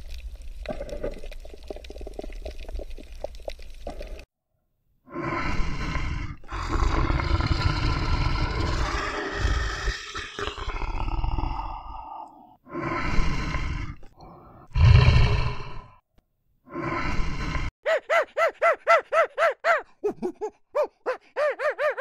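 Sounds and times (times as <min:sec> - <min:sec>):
animal roaring and growling: 0:05.1 - 0:16.0.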